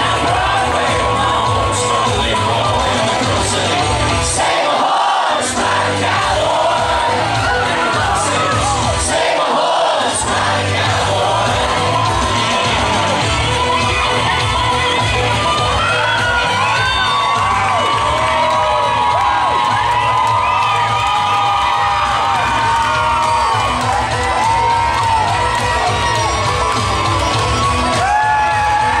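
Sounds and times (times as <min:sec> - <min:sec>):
audience cheering and whooping: 0:00.0 - 0:29.0
loud dance music: 0:00.0 - 0:29.0.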